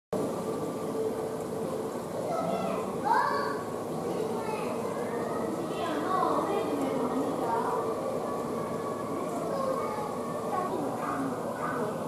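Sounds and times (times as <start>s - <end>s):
background chatter of voices: 0.2s - 12.0s.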